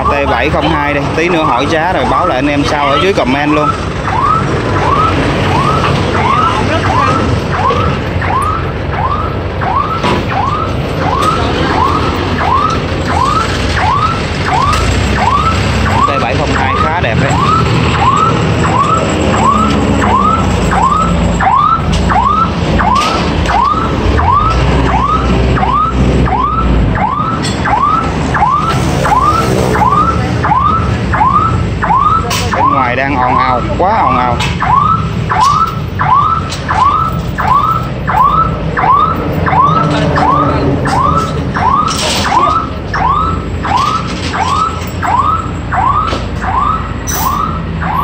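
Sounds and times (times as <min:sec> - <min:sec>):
engine rumbling: 0:00.0 - 0:48.0.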